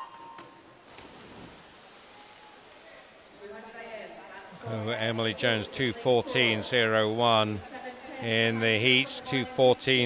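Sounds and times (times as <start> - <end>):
faint splashing: 0.6 - 4.5.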